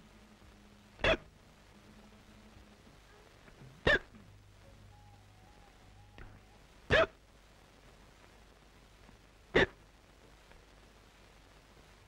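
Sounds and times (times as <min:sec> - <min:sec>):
person hiccuping: 0:01.0 - 0:01.3, 0:03.8 - 0:04.3, 0:06.9 - 0:07.2, 0:09.5 - 0:09.8.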